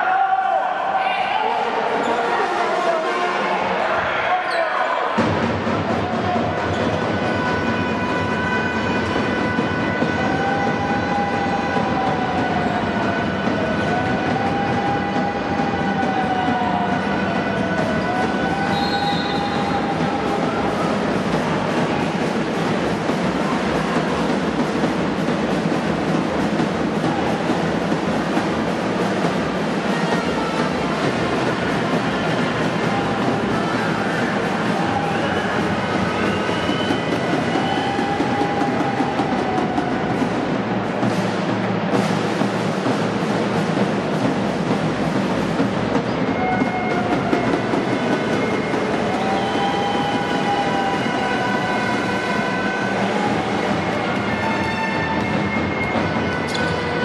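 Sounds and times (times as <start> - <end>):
noisy din of sports hall: 0.0 - 57.0.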